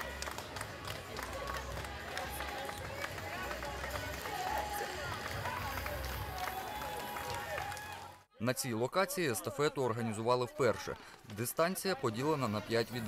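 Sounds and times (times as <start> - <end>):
crowd voices and chatter: 0.0 - 13.0.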